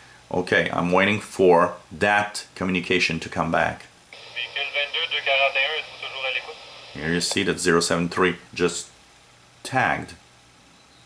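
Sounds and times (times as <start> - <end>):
radio static hiss: 4.1 - 8.0
radio voice transmission: 4.2 - 7.4.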